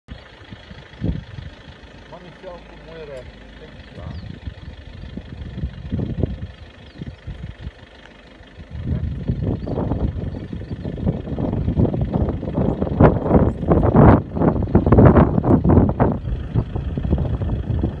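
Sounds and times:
wind buffeting microphone: 0:00.1 - 0:08.0, 0:08.6 - 0:18.0.

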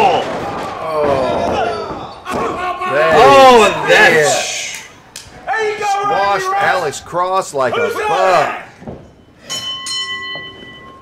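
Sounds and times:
ring bell strikes: 0:09.4 - 0:11.0.

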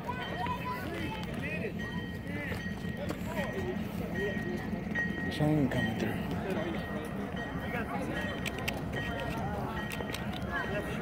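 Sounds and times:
distant people talking and calling: 0:00.0 - 0:11.0.

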